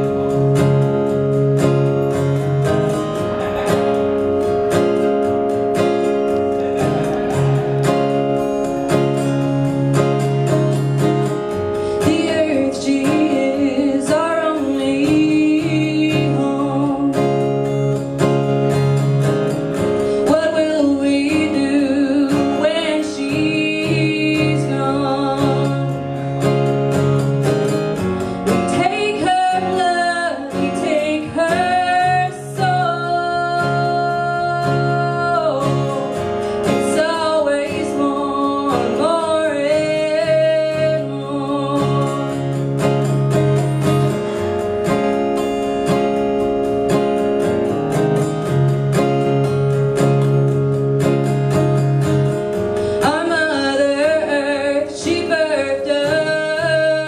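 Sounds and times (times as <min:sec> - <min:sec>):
acoustic guitar strumming: 0:00.0 - 0:57.0
woman singing: 0:08.9 - 0:18.0, 0:20.2 - 0:26.8, 0:28.4 - 0:43.0, 0:52.9 - 0:57.0.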